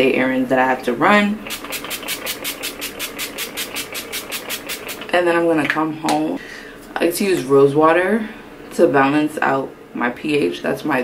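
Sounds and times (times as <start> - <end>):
spray bottle misting hisses: 1.5 - 5.1.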